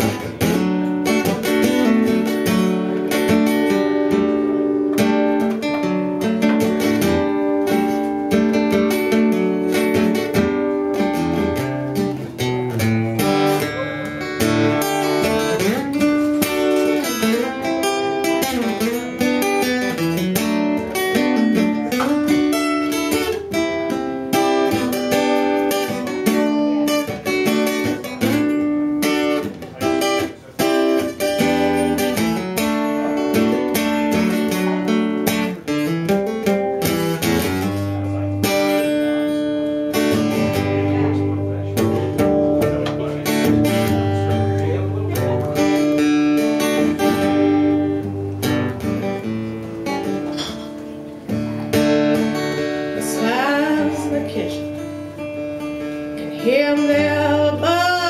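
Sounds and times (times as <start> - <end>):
acoustic guitar picking and strumming: 0.0 - 58.0.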